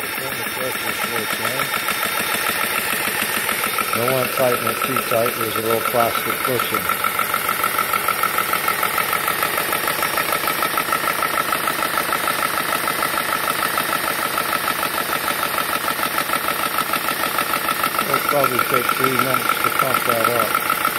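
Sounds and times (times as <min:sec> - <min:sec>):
air compressor pumping: 0:00.0 - 0:20.9.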